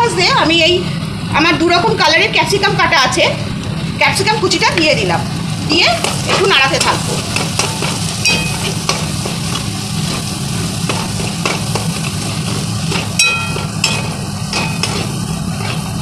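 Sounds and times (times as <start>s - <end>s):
vegetables sizzling in butter: 4.4s - 16.0s
low hum: 4.9s - 16.0s
metal spatula scraping pan: 5.9s - 16.0s.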